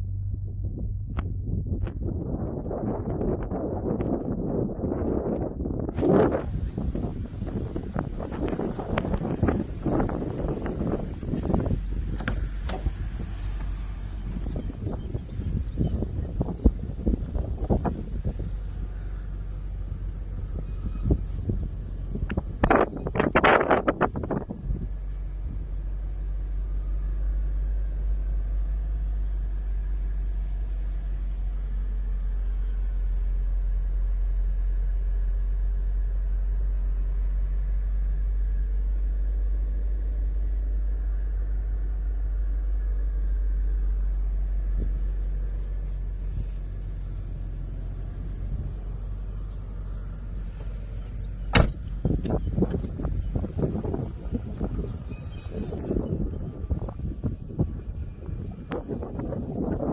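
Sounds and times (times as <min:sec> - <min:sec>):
car engine idling: 0:00.0 - 0:59.9
sharp knock: 0:51.5 - 0:51.8.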